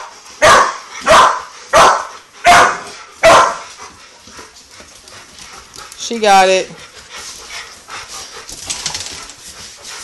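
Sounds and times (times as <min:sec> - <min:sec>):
dogs breathing noisily: 0:00.0 - 0:10.0
dogs scuffling in play: 0:02.8 - 0:10.0
small clicks and rustles: 0:08.4 - 0:09.7.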